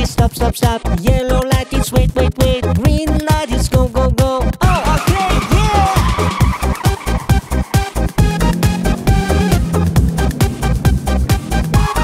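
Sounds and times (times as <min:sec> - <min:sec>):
upbeat electronic music: 0:00.0 - 0:12.0
cartoon car driving off: 0:04.6 - 0:12.0.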